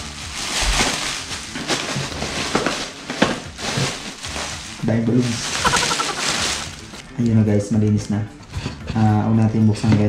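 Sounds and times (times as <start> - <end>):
plastic packing pillows crackling: 0.0 - 7.4.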